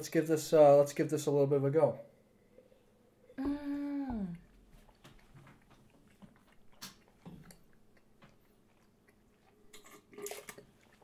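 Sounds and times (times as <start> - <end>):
wet mouth clicks and smacks: 4.9 - 11.0.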